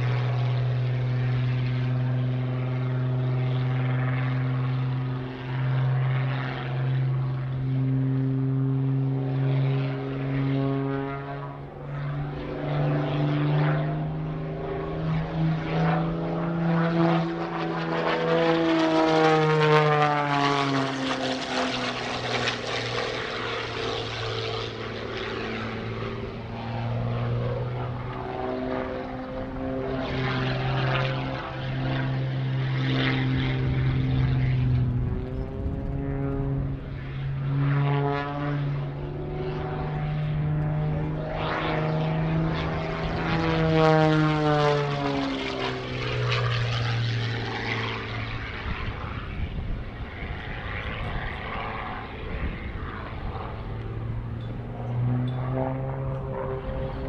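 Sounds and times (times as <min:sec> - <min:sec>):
propeller plane engine: 0:00.0 - 0:57.0.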